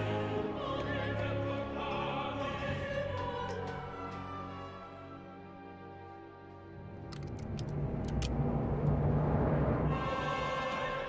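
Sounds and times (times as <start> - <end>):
low rumble: 6.9 - 11.0.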